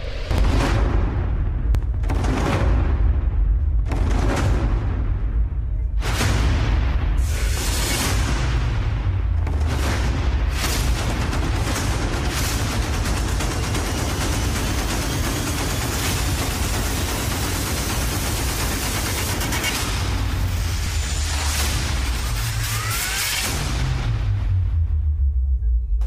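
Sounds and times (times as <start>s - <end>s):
battle sound effects and music: 0.0s - 25.4s
booms and sharp hits: 0.0s - 25.4s.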